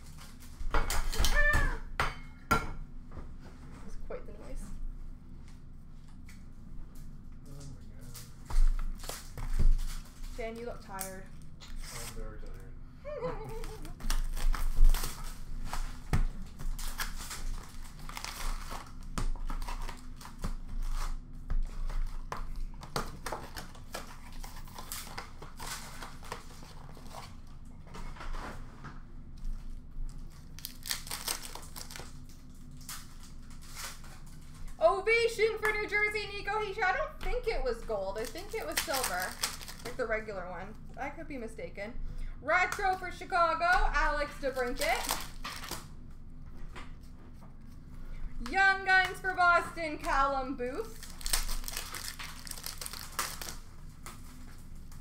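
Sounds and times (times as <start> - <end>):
card packs tearing: 11.6 - 12.6, 13.5 - 21.2, 21.8 - 27.3, 30.3 - 34.3, 38.2 - 40.0, 43.6 - 45.9, 50.8 - 55.0
wrappers crinkling: 13.5 - 27.4, 29.6 - 34.9, 37.4 - 40.1, 42.8 - 45.9, 48.6 - 55.0
cards riffling: 51.0 - 54.4.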